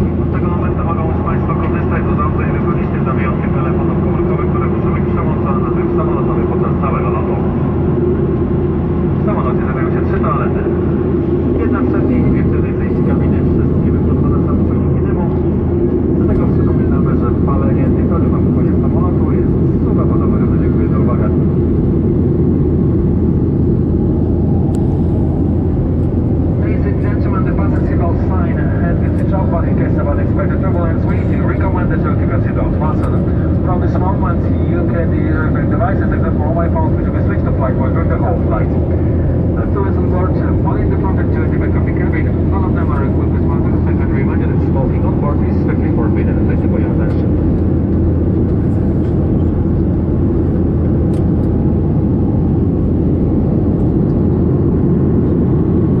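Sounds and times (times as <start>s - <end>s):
airplane cabin drone: 0.0s - 56.0s
indistinct passenger conversation: 0.0s - 56.0s.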